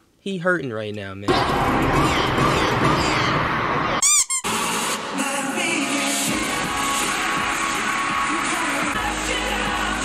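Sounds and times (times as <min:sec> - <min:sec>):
pop music with singing: 0:04.5 - 0:10.0.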